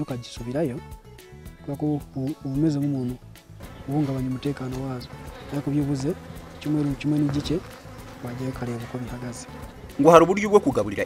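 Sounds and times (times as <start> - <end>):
bees buzzing: 3.4 - 11.0
man talking: 3.8 - 11.0.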